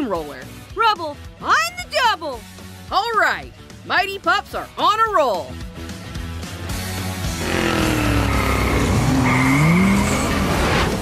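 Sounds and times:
background music: 0.0s - 11.0s
cartoon engine revving: 7.3s - 10.8s
tyre squeal: 7.8s - 10.6s.

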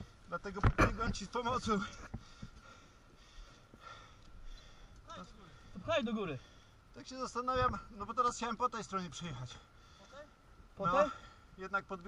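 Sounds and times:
faint breathing: 1.8s - 7.0s, 9.3s - 11.6s.

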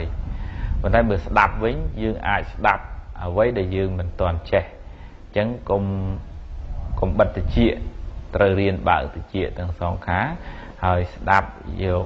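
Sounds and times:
man speaking: 0.0s - 6.3s, 6.9s - 12.0s.

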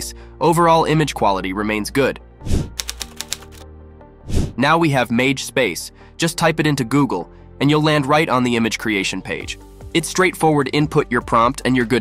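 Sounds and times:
soft background music: 0.0s - 12.0s
typewriter-like key clicks: 2.8s - 3.6s.

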